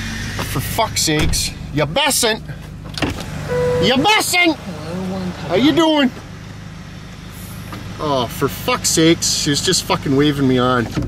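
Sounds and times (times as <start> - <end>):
vehicle engine idling: 0.0 - 11.0.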